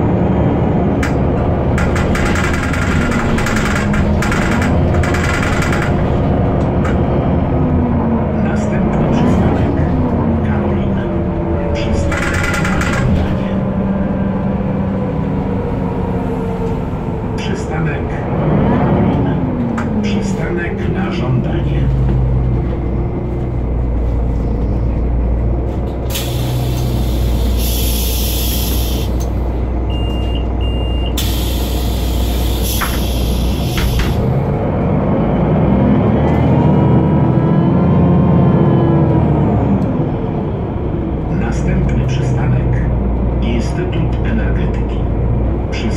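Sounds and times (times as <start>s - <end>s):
bus diesel engine: 0.0s - 45.9s
pneumatic doors hissing: 26.1s - 29.4s, 31.1s - 34.4s
door warning beeps: 29.9s - 31.3s.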